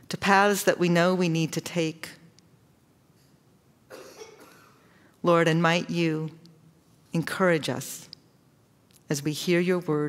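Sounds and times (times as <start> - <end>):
person coughing faintly: 3.9 - 4.9.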